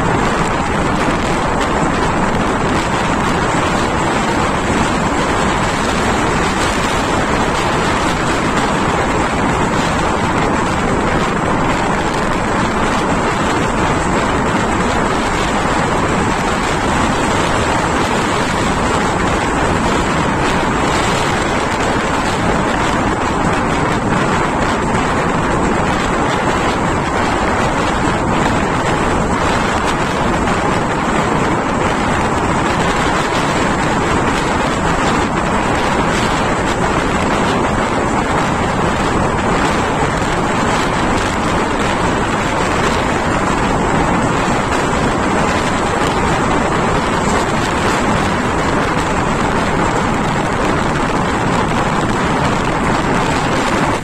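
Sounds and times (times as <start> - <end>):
train rushing on track: 0.0 - 54.0
wind buffeting microphone: 0.0 - 54.0.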